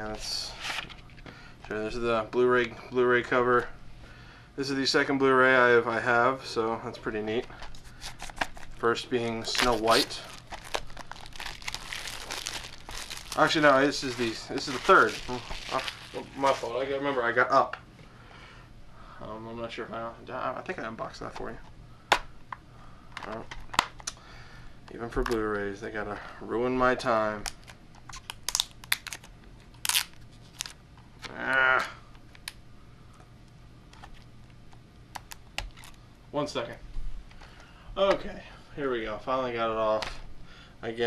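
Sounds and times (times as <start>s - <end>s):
plastic shrink wrap crinkling: 7.7s - 17.0s, 27.3s - 31.3s.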